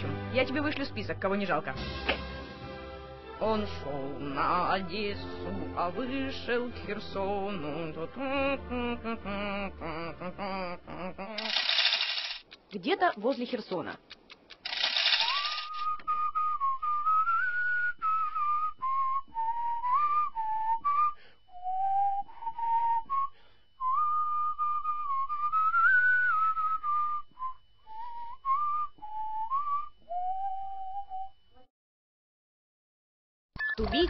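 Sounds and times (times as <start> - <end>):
person whistling a slow melody: 15.7 - 31.7.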